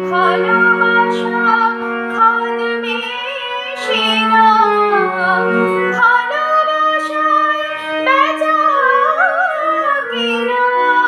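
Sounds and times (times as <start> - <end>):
held accompaniment notes: 0.0 - 11.0
woman singing with vibrato: 0.0 - 11.0.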